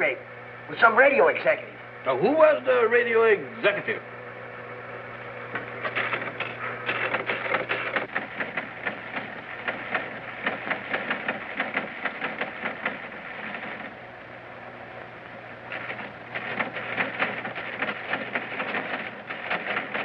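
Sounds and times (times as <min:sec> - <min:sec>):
teletype machine clattering: 0:05.5 - 0:14.0, 0:15.7 - 0:20.0.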